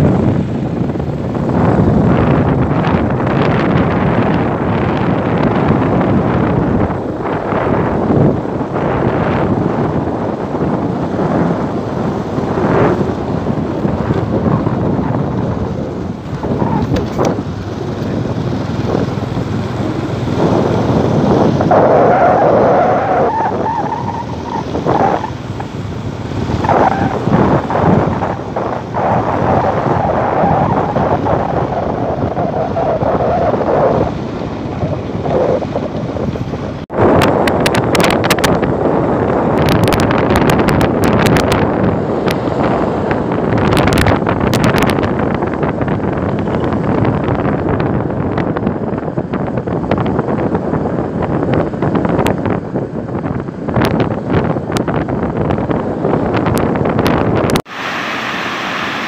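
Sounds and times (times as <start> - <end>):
scooter running noise: 0.0 - 57.6
wind buffeting microphone: 0.0 - 59.0.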